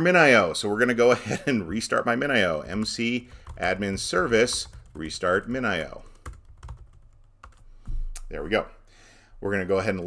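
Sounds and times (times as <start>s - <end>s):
computer keyboard keystrokes: 2.7s - 8.0s.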